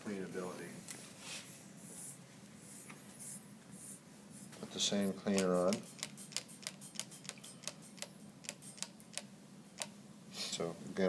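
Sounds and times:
spray bottle spritzing: 5.0s - 8.9s.

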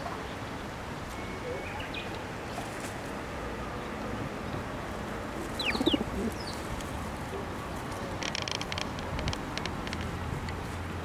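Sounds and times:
sparrows chirping: 0.2s - 2.6s, 5.4s - 7.1s.

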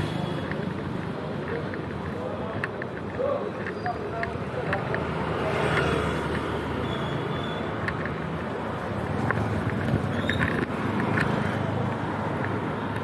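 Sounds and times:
auto-rickshaw and motorbikes running: 0.0s - 13.0s.

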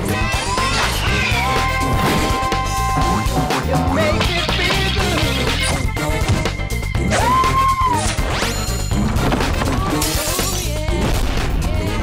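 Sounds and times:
upbeat theme music: 0.0s - 12.0s.

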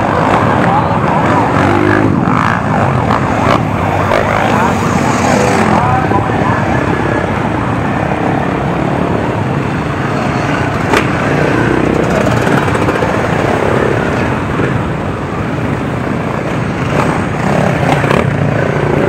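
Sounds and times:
dirt bike engines passing: 0.0s - 19.0s.

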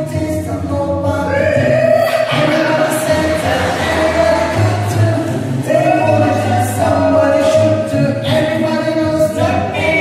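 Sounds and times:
men singing in harmony: 0.0s - 10.0s.

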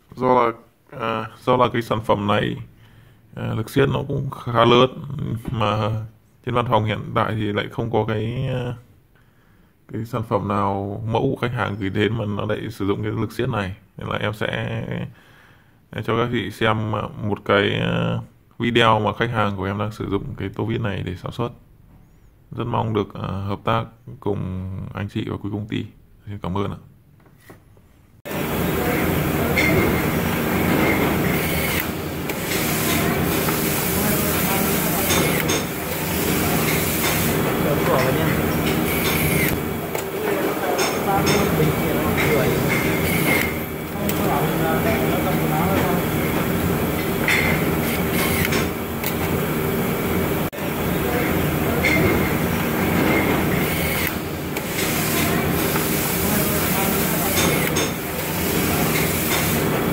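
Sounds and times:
background voices: 28.3s - 48.8s
factory machinery noise: 28.3s - 59.9s
electric screwdriver whine: 30.8s - 33.1s, 38.8s - 39.6s, 43.0s - 44.2s, 47.8s - 49.2s, 53.5s - 54.2s.

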